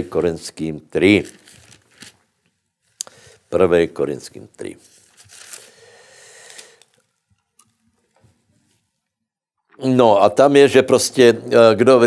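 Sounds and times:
thin pages rustling: 1.1 - 3.0, 4.6 - 5.8.

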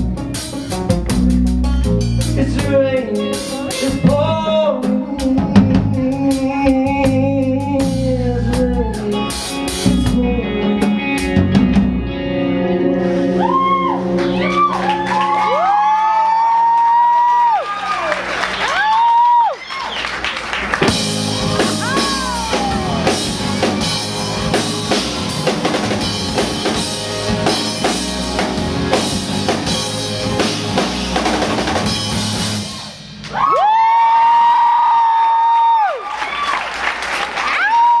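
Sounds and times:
live rock band playing: 0.0 - 16.8, 19.7 - 33.5
drum and cymbal strokes: 20.9 - 33.2.

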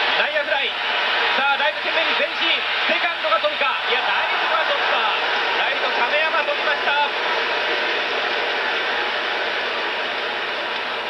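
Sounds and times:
stadium crowd din: 0.0 - 11.0.

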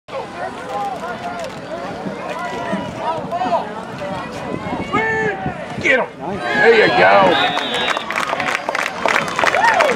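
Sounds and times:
spectators shouting: 0.7 - 9.9.

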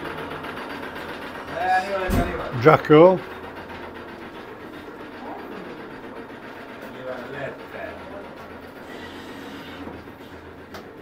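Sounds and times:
steady low hum: 1.5 - 8.8.

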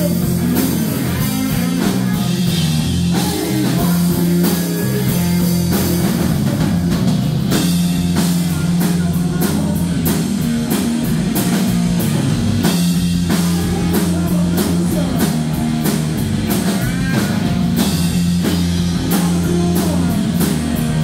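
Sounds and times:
distorted electric guitar: 0.0 - 21.0
drum kit: 0.0 - 21.0
electric bass: 0.0 - 21.0.

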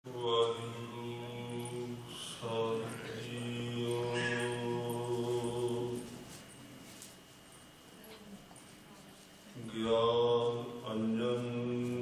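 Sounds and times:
man chanting on one pitch: 9.6 - 12.0.

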